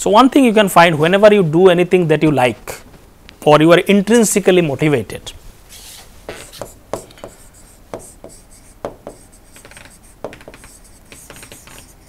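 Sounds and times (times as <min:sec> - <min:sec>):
pen scratching on tablet: 0:05.8 - 0:12.0
pen tapping on tablet: 0:06.5 - 0:11.9.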